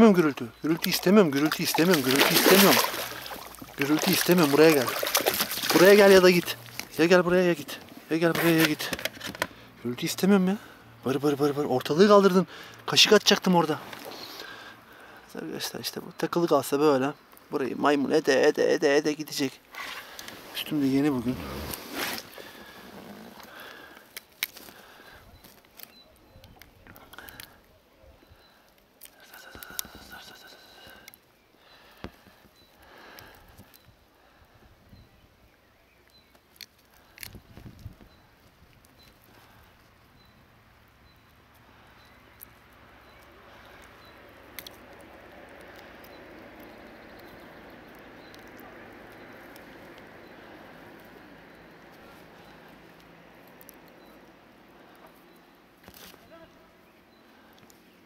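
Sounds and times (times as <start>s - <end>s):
fishing tackle clicks and rustles: 0.6s - 9.6s, 19.7s - 27.6s, 36.2s - 40.0s, 55.8s - 56.3s.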